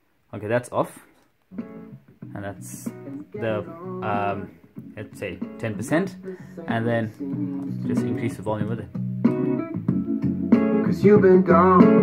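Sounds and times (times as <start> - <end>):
guitar pop song over speaker: 1.5 - 12.0.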